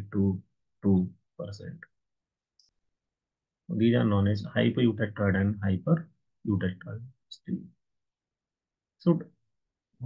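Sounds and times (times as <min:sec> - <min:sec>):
man lecturing: 0:00.0 - 0:01.8, 0:03.7 - 0:07.7, 0:09.0 - 0:09.3.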